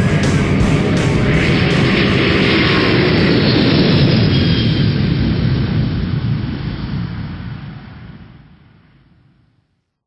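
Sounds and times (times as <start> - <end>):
dense rushing rumble: 0.0 - 8.4.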